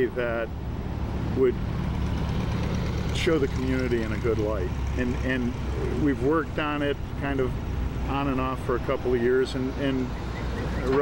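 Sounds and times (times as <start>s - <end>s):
heavy machinery engine rumbling: 0.0s - 11.0s.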